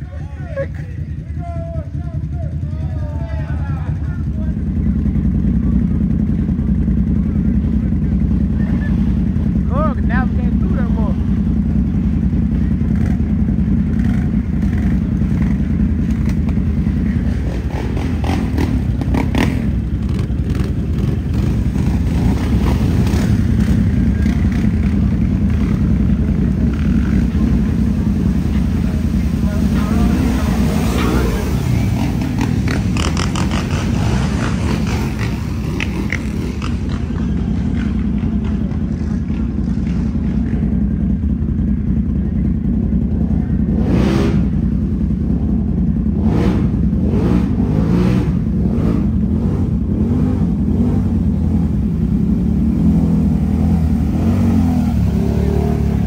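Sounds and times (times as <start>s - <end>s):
atv engine running hard: 0.0s - 56.0s.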